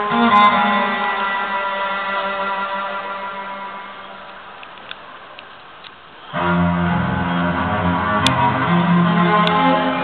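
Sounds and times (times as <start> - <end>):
live rock band music: 6.3 - 10.0.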